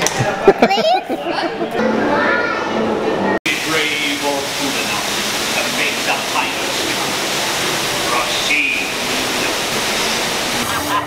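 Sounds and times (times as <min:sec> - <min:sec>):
echoing crowd chatter: 0:00.0 - 0:11.0
children's voices: 0:00.6 - 0:03.4
hiss of falling water: 0:03.5 - 0:11.0.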